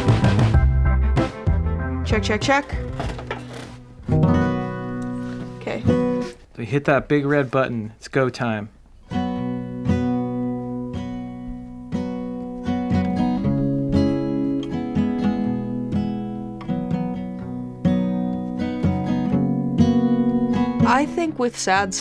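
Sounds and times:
acoustic guitar strumming chords: 0:00.0 - 0:06.4, 0:09.1 - 0:22.0.

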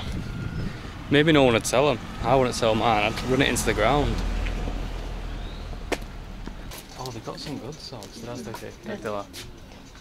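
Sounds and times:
low outdoor rumble: 0:00.0 - 0:08.0.

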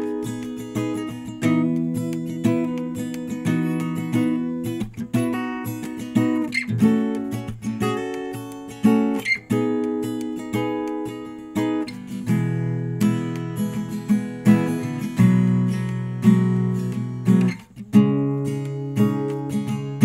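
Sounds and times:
acoustic guitar strumming chords: 0:00.0 - 0:20.0.

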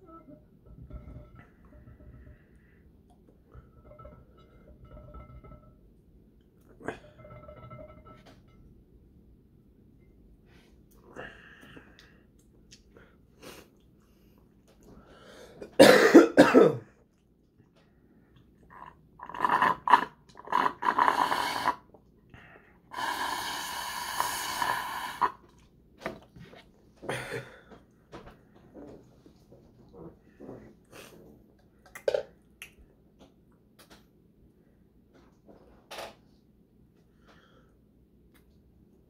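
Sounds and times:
man coughing: 0:15.7 - 0:16.9.

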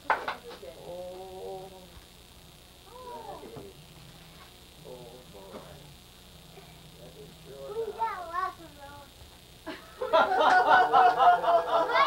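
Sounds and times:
voices: 0:02.8 - 0:12.0.

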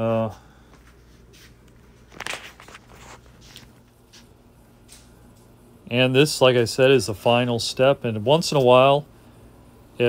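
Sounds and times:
feet scuffing on wooden floor: 0:00.7 - 0:04.4.

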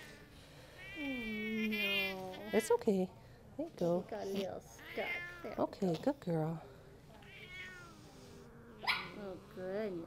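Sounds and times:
cat meowing: 0:04.8 - 0:05.6, 0:07.2 - 0:08.0.

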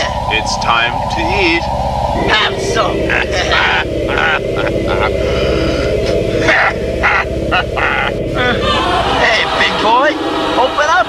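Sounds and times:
low drone: 0:00.0 - 0:11.0
voice-like bursts: 0:00.0 - 0:11.0.

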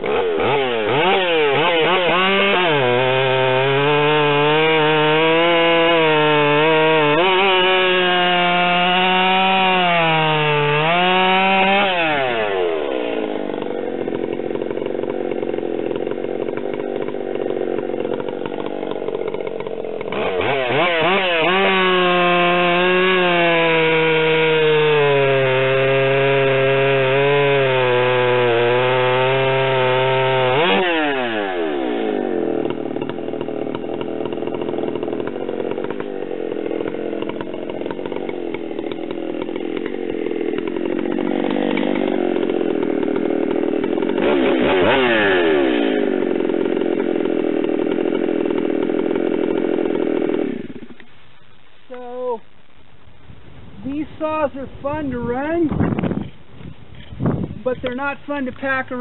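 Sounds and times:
chainsaw cutting log: 0:00.0 - 0:52.9, 0:53.9 - 0:59.0.

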